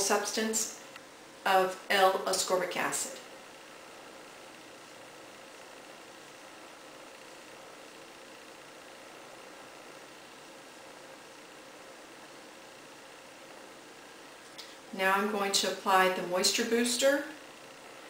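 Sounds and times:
faint steady hum: 0.0s - 18.0s.

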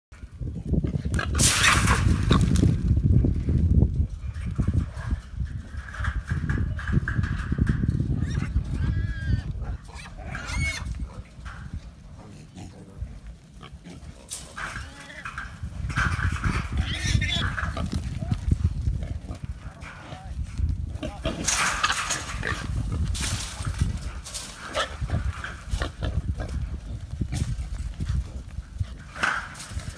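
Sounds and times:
hogs grunting and squealing: 8.1s - 11.2s, 12.1s - 23.1s.

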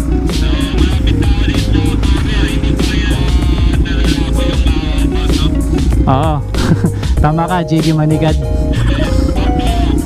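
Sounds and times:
background music with steady beat: 0.0s - 10.0s
motorcycle engine idling: 0.0s - 10.0s.

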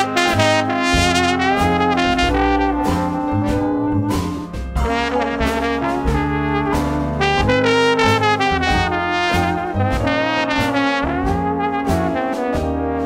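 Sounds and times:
jazz band playing: 0.0s - 13.0s
trombone sliding upward: 0.0s - 13.0s.

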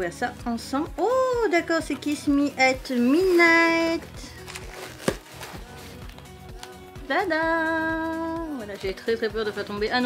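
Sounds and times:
faint background music: 0.0s - 10.0s
cardboard rustling and scraping: 2.9s - 6.0s.

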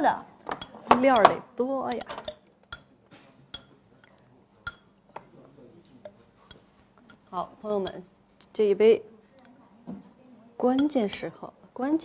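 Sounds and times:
spoon clinking against cup: 0.5s - 4.9s, 6.0s - 8.0s, 10.7s - 11.2s.

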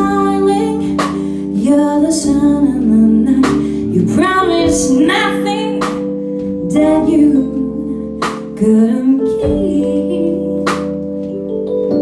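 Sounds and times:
woman singing: 0.0s - 11.1s.

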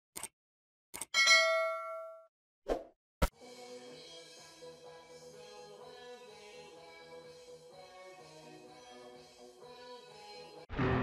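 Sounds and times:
bright bell ding: 1.2s - 2.3s.

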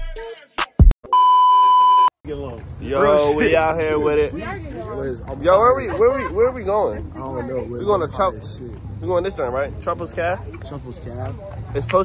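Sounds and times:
high-pitched test tone beep: 1.1s - 2.1s
men talking: 2.3s - 12.0s.

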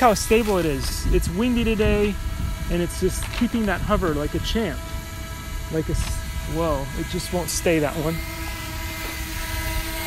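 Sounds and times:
drone propeller hum: 0.0s - 10.0s
wind rumble on microphone: 0.0s - 10.0s.

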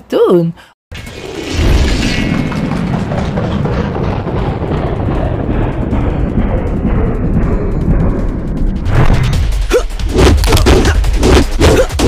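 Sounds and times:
deep rumble: 0.9s - 11.9s.

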